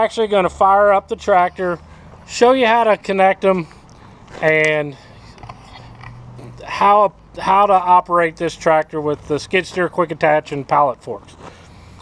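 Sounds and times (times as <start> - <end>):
man speaking: 0.0 - 3.7, 4.4 - 5.1, 6.5 - 11.4.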